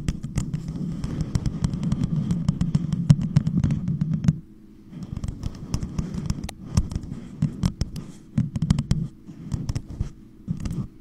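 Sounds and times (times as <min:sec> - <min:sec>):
fingernails tapping on cup: 0:00.0 - 0:04.4, 0:05.0 - 0:10.8.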